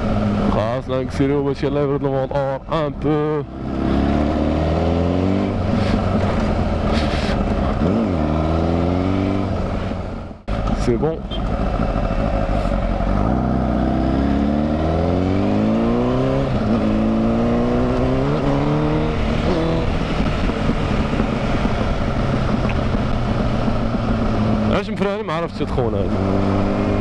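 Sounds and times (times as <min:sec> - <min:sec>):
motorcycle engine accelerating: 0:00.0 - 0:27.0.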